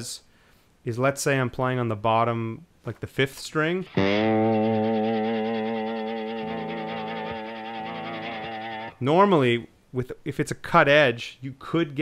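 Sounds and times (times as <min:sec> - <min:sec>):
slide electric guitar note: 0:03.8 - 0:09.0.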